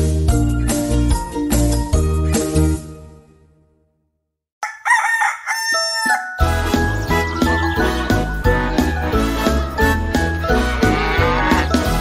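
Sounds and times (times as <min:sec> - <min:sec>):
bouncy children's song music: 0:00.0 - 0:03.0, 0:06.3 - 0:12.0
rooster crowing: 0:04.6 - 0:06.4
song music: 0:06.2 - 0:12.0.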